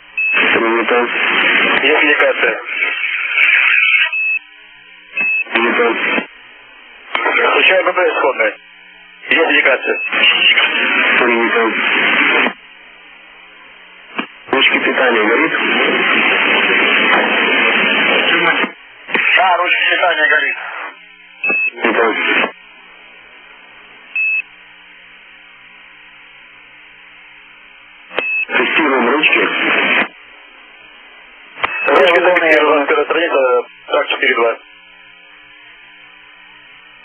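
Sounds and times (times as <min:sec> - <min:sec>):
radio channel hiss and hum: 0:00.0 - 0:37.0
short high-pitched radio beep: 0:00.2 - 0:01.0, 0:02.8 - 0:04.4, 0:05.2 - 0:05.8, 0:09.7 - 0:10.8, 0:21.4 - 0:22.4, 0:28.1 - 0:29.5, 0:31.6 - 0:32.2
person talking over radio: 0:00.4 - 0:04.2, 0:05.2 - 0:06.3, 0:07.1 - 0:08.6, 0:09.2 - 0:12.6, 0:14.2 - 0:17.3, 0:18.0 - 0:22.6, 0:28.2 - 0:30.2, 0:31.6 - 0:34.6.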